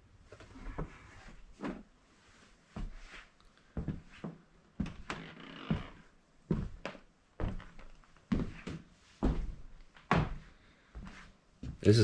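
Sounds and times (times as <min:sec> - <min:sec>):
heavy footsteps on wooden floor: 0:03.8 - 0:11.9.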